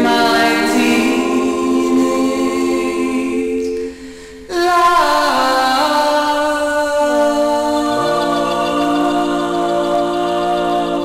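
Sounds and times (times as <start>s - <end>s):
vocal group singing harmony: 0.0s - 11.0s.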